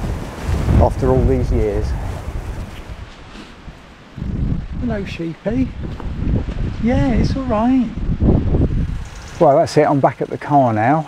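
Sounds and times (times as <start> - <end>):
wind buffeting microphone: 0.0 - 10.4.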